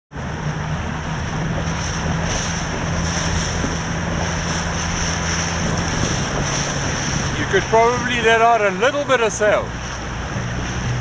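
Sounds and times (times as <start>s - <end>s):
outboard motor running: 0.1s - 11.0s
water rushing past: 0.1s - 11.0s
wind buffeting microphone: 0.1s - 11.0s.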